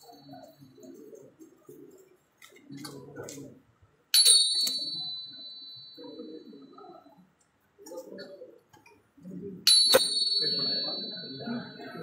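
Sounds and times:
small metal bell ringing: 0:04.2 - 0:06.9, 0:09.7 - 0:12.0.

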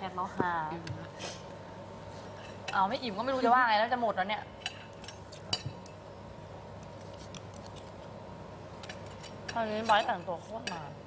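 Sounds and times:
low steady hum: 0:00.0 - 0:11.0
cutlery and tableware clicks: 0:08.8 - 0:10.9.

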